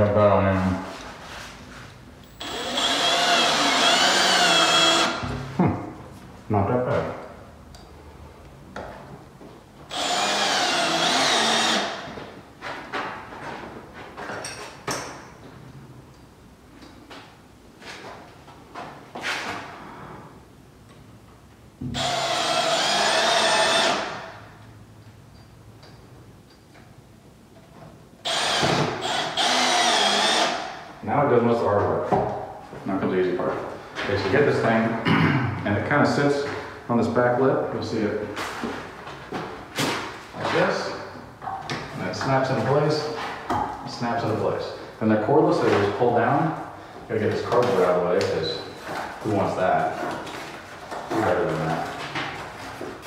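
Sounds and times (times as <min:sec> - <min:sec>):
cordless drill driving screws: 0:02.3 - 0:05.2, 0:09.9 - 0:12.0, 0:21.9 - 0:24.2, 0:28.2 - 0:30.7.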